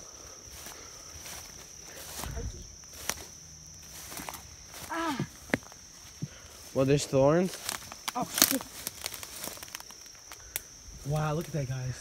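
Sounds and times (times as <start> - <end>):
footsteps through undergrowth: 0.0 - 12.0
high insect drone: 0.0 - 12.0
twigs crackling and snapping: 0.6 - 6.8, 7.4 - 11.6.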